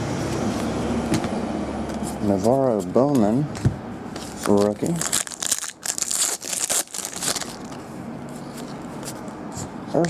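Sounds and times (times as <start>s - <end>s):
foil crinkling: 4.3s - 7.8s
foil pack ripping: 4.4s - 7.8s.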